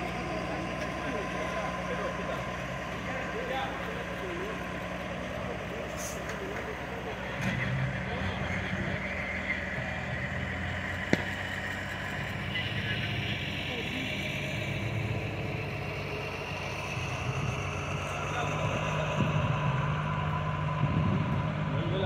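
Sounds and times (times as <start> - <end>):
tow truck engine running: 0.0 - 22.0.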